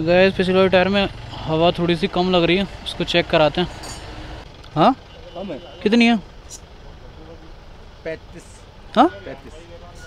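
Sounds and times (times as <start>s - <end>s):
street traffic noise: 0.0s - 10.0s.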